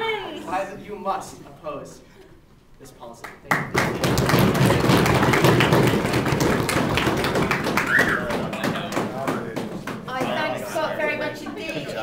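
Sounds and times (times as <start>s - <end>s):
audience applause: 3.5s - 10.2s.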